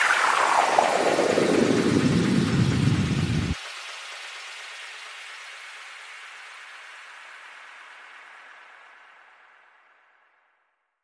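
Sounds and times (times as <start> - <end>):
falling noise sweep: 0.0 - 3.6.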